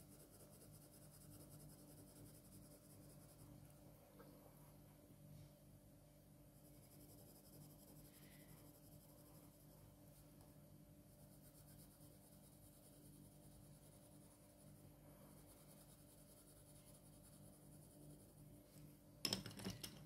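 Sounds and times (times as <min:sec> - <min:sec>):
pencil strokes on paper: 0:00.0 - 0:03.6, 0:06.5 - 0:18.8
low steady hum: 0:00.0 - 0:20.0.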